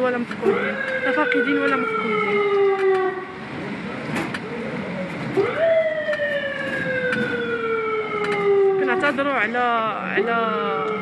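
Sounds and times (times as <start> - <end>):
road noise hum: 0.0 - 11.0
vehicle siren wailing: 0.4 - 3.4, 5.4 - 11.0.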